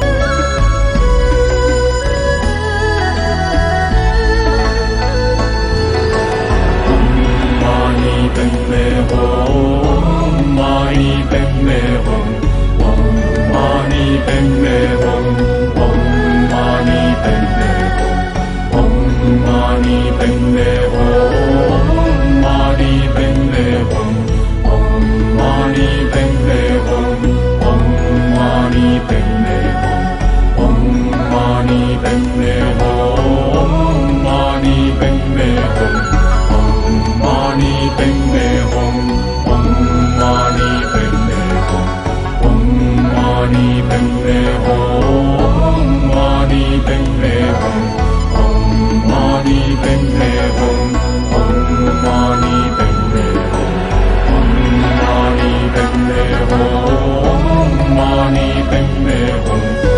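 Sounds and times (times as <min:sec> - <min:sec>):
steady low drone: 0:00.0 - 0:59.9
chanted mantra singing: 0:01.4 - 0:59.9.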